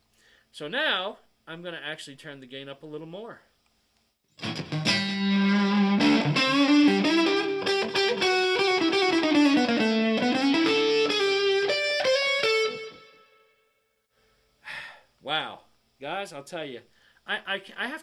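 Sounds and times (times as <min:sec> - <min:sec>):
overdriven electric guitar lead: 0:04.4 - 0:13.3.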